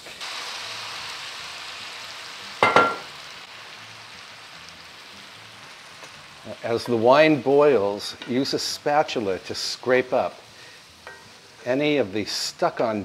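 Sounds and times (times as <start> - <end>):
wine sizzling in a hot skillet: 0.0 - 13.0.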